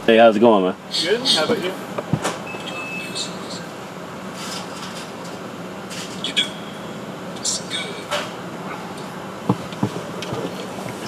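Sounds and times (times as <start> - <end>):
low hum inside car: 0.0 - 4.4, 5.2 - 11.0
faint voices: 5.8 - 11.0.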